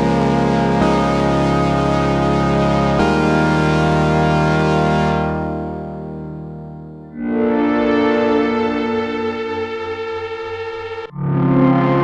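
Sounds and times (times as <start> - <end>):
lower sustained synth sound: 0.0 - 12.0
synthesizer sustained tone: 0.0 - 12.0.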